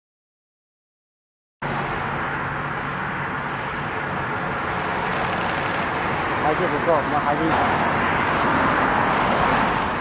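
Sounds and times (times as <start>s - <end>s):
distant engine roar: 1.6s - 10.0s
high fluttering hiss: 4.7s - 6.8s.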